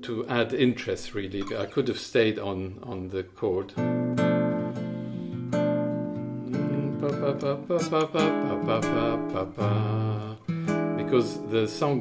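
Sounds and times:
classical guitar fingerstyle: 1.0s - 2.0s, 2.9s - 12.0s.

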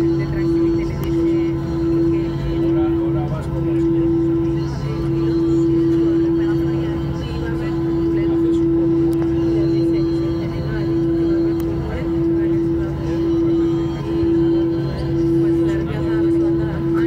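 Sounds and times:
jet engines droning in cabin: 0.0s - 17.0s.

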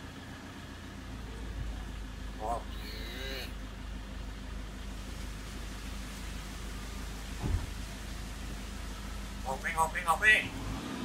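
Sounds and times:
steady low hum: 0.0s - 10.6s
myna call: 2.4s - 3.6s, 9.5s - 10.5s
dull thump: 7.3s - 7.8s.

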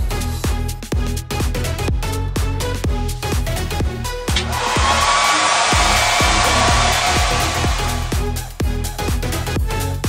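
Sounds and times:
electronic dance music: 4.4s - 8.9s.

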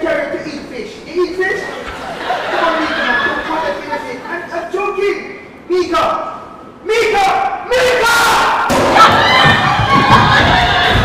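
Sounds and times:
many voices yelling: 7.8s - 11.0s.

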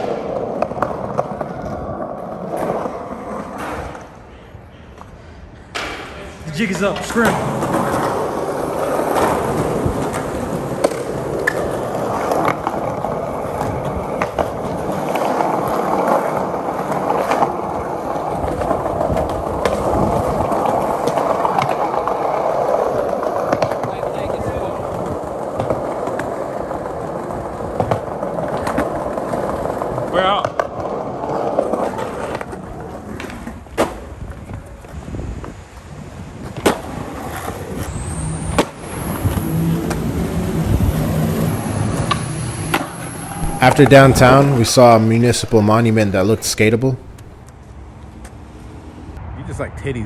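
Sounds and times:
skateboard wheels rolling on tiles: 0.0s - 49.2s.

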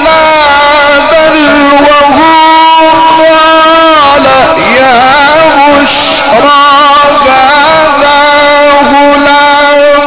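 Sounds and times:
man reciting melodically: 0.0s - 10.0s.

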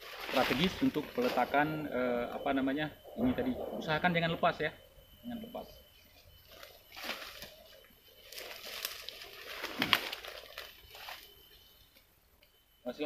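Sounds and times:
footsteps crunching leaf litter: 0.0s - 1.8s, 6.4s - 11.4s
leaves swishing: 0.0s - 1.8s, 6.5s - 11.3s.

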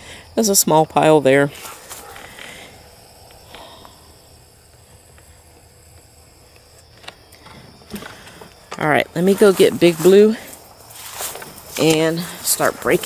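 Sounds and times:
footsteps through grass: 1.6s - 2.4s, 8.8s - 13.0s.

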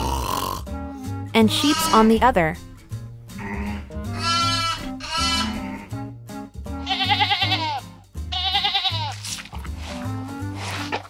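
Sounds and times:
background music with bass line: 0.0s - 11.0s
sheep bleating: 1.4s - 2.2s, 3.3s - 6.0s, 6.8s - 9.2s.

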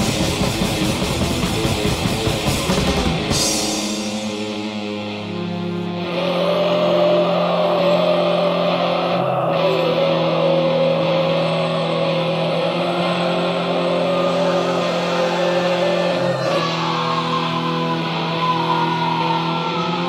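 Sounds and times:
metal music with distorted guitars: 0.0s - 20.0s.

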